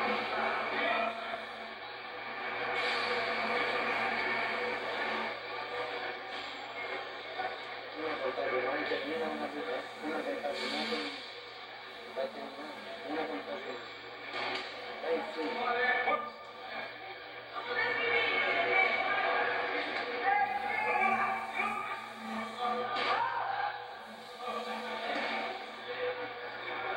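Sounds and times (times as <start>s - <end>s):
crowd chatter: 0.0s - 26.9s.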